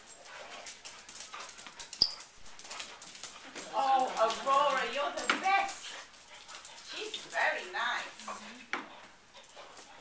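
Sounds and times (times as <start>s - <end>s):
dogs scuffling: 0.0s - 10.0s.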